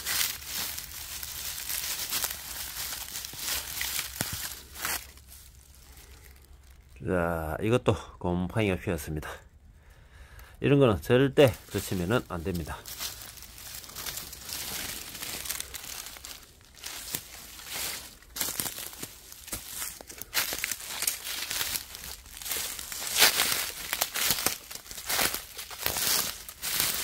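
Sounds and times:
footsteps on dry leaves: 0.0 - 6.9, 11.4 - 27.0.

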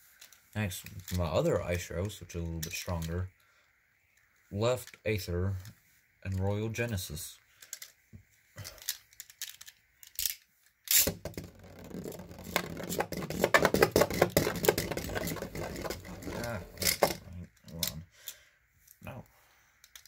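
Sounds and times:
spinning top rattling in plastic bowl: 10.9 - 17.2.

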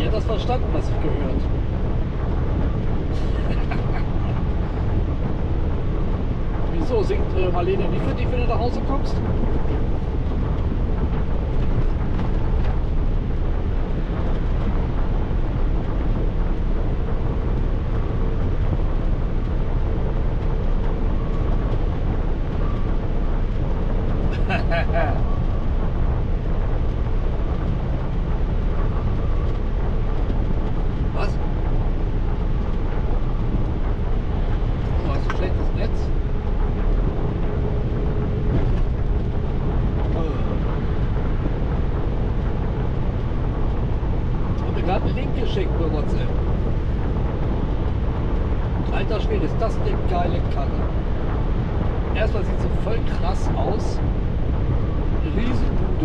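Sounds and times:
faint steady hum: 0.0 - 56.0
tyre and wind road noise: 0.0 - 56.0.

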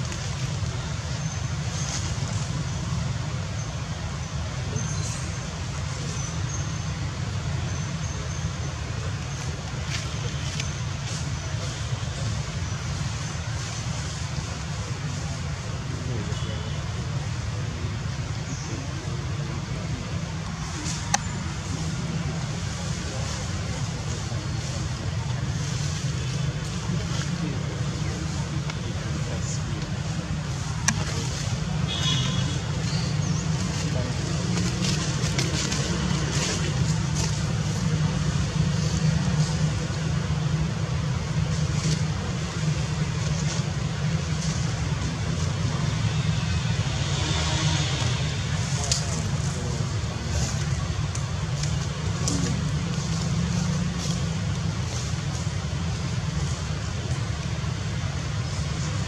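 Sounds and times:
distant voices: 0.0 - 59.0
low outdoor rumble: 0.0 - 59.0.

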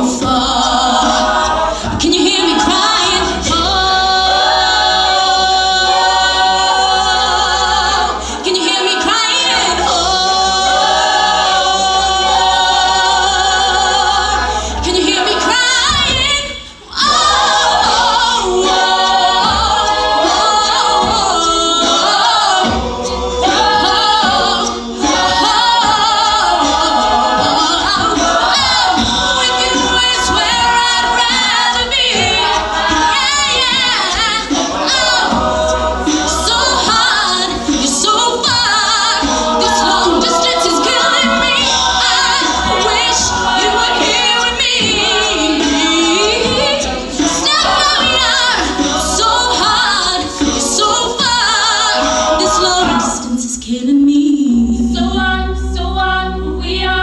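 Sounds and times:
backing vocal harmonies: 0.0 - 57.0
woman singing lead: 0.0 - 57.0.

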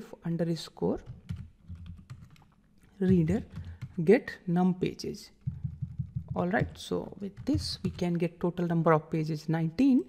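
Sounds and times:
faint keyboard typing: 1.0 - 4.0, 5.4 - 8.4.

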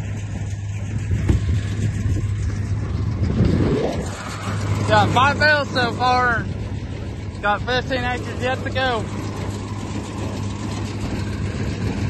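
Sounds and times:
hay baler clatter: 0.0 - 12.0
tractor engine running: 0.0 - 12.0.

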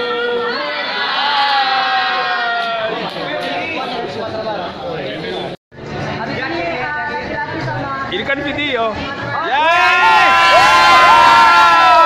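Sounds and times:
group of people cheering: 0.0 - 3.2, 9.5 - 12.0.

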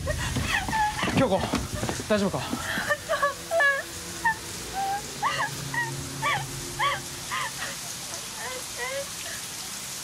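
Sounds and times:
high-pitched whimpering cries: 2.7 - 9.5.

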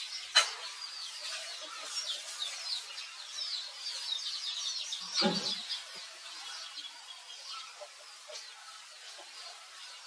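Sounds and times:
high chirping calls: 0.0 - 10.0
steady hiss: 0.0 - 10.0.

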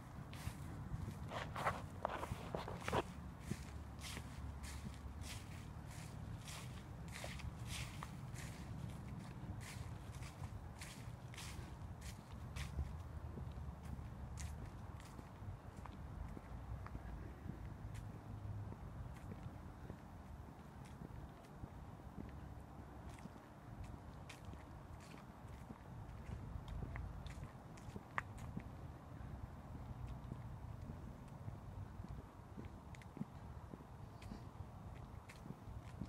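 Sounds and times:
footsteps on leafy tarmac: 0.0 - 36.0.

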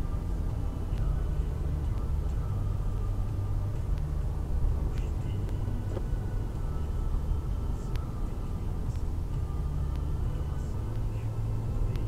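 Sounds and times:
road and engine drone in car: 0.0 - 12.0.

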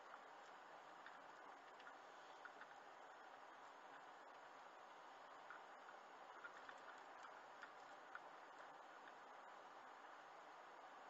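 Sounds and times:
light ticks: 0.0 - 9.5.

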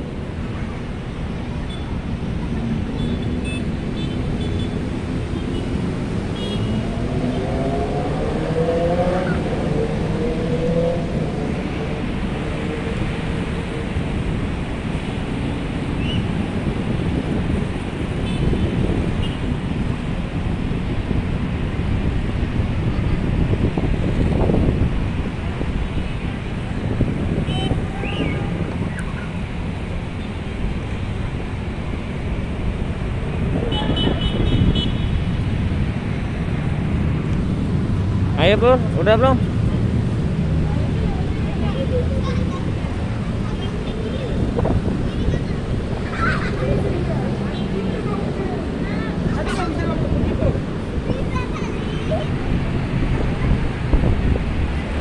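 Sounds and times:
engines accelerating: 0.0 - 18.2, 18.8 - 55.0
road traffic noise: 0.0 - 55.0.

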